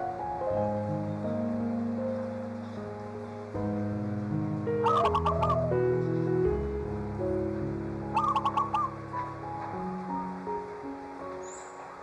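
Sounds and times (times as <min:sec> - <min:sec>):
soft slow piano music: 0:00.0 - 0:12.0
bird calls: 0:04.8 - 0:06.5, 0:08.1 - 0:09.4, 0:11.3 - 0:12.0.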